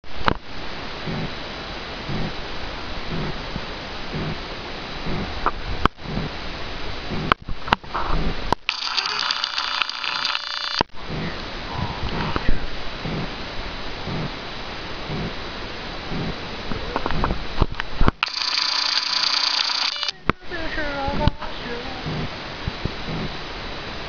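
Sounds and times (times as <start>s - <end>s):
steady microphone noise: 0.0s - 18.3s, 20.0s - 24.0s
soft low puffs: 1.0s - 1.4s, 2.1s - 2.4s, 3.1s - 4.4s, 5.0s - 6.4s, 11.0s - 13.4s, 15.0s - 15.4s, 22.0s - 23.4s
sharp clicks: 8.5s - 10.9s, 17.0s - 20.2s
camera zoom motor whine: 8.7s - 10.9s, 18.2s - 20.2s.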